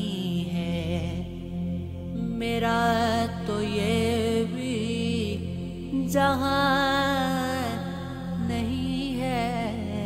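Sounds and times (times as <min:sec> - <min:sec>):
low drone: 0:00.0 - 0:10.0
person singing devotional song: 0:00.0 - 0:10.0.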